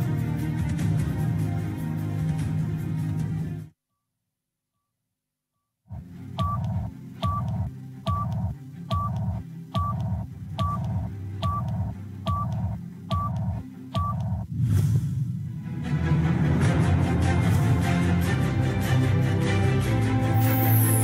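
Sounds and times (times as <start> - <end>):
low pulsing bass: 5.9 - 18.0
electronic two-tone countdown beeps: 6.4 - 14.5.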